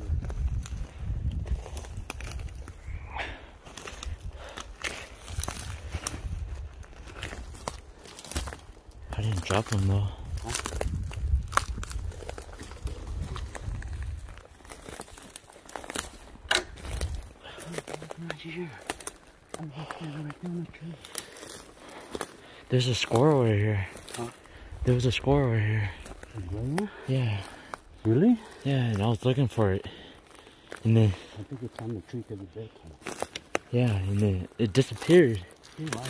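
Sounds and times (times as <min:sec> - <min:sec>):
footsteps on pine needles: 0:00.0 - 0:36.0
twigs snapping: 0:00.1 - 0:32.0, 0:32.8 - 0:36.0.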